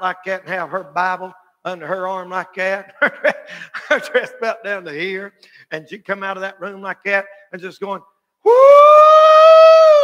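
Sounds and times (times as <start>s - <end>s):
man whooping: 8.4s - 10.0s.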